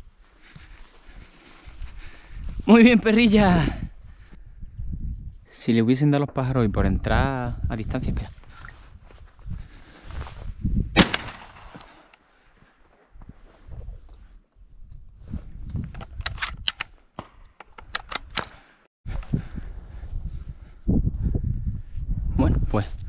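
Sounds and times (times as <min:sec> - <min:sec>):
shotgun shot: 0:11.0 - 0:11.8.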